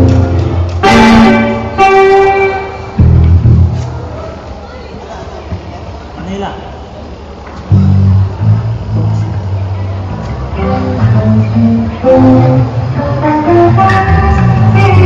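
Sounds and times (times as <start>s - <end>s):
electric guitar notes: 0.0s - 4.1s, 7.6s - 15.0s
loud sustained bass notes: 0.0s - 4.1s, 7.7s - 15.0s.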